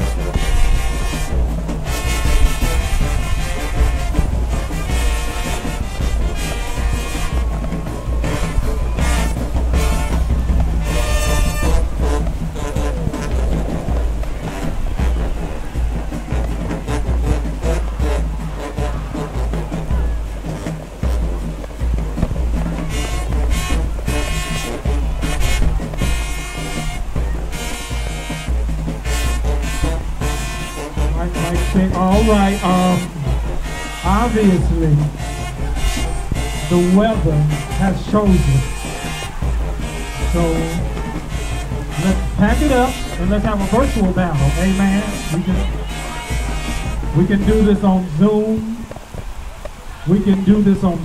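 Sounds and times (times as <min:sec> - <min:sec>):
bass drums beating: 0:00.0 - 0:51.0
brass with sousaphones: 0:00.0 - 0:51.0.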